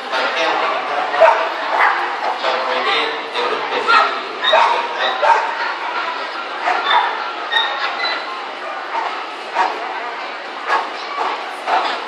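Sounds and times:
hubbub of voices: 0:00.0 - 0:12.0
dogs barking and yipping: 0:01.1 - 0:02.6, 0:03.8 - 0:05.7, 0:06.5 - 0:09.9, 0:10.6 - 0:12.0.

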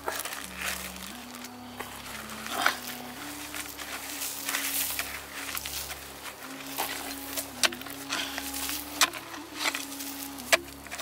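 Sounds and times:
hand scraping gravelly soil: 0:00.0 - 0:11.0
low tone stepping in pitch: 0:00.0 - 0:11.0.

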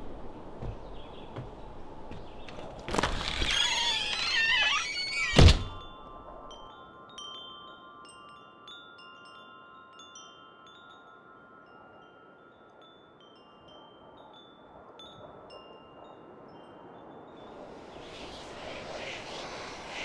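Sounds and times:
faint wind hush: 0:00.0 - 0:20.0
tubular wind chime ringing: 0:03.7 - 0:17.6.

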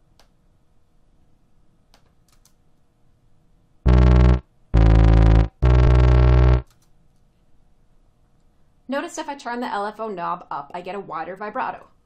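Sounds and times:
low sustained synthesizer notes: 0:03.9 - 0:06.6.

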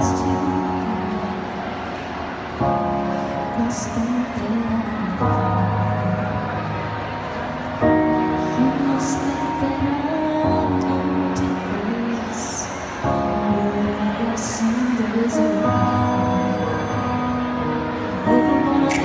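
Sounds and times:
woman singing slow song: 0:00.0 - 0:02.0, 0:02.9 - 0:06.7, 0:08.0 - 0:19.0.

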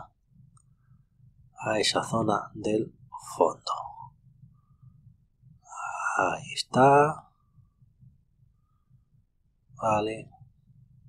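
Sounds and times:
faint low room hum: 0:00.0 - 0:11.0
person breathing: 0:05.6 - 0:06.2.

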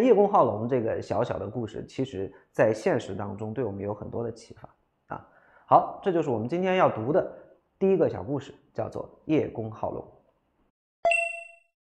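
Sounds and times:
bell-like ding: 0:11.0 - 0:11.8.

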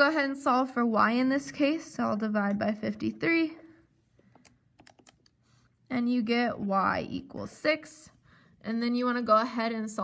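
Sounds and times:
calculator keys clicking: 0:04.8 - 0:05.3.

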